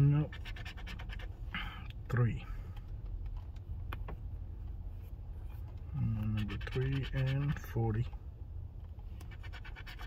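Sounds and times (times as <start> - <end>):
lottery ticket being scratched: 0.0 - 1.4, 6.0 - 8.0, 9.2 - 10.0.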